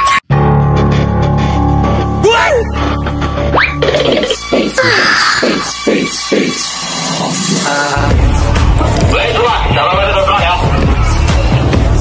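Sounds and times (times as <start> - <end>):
background music with pulsing beat: 0.3 - 12.0.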